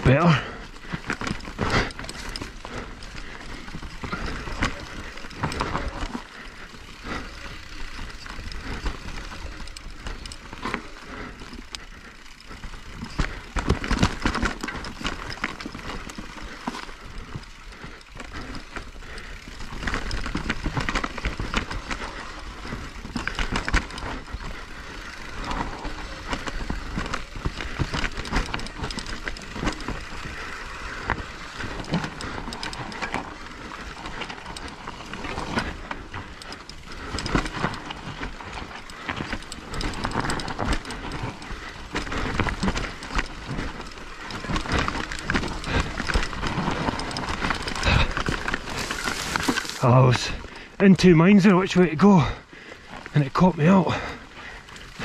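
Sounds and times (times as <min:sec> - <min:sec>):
bike clattering over bumps: 0:00.0 - 0:50.8
tyres on dirt: 0:00.0 - 0:55.0.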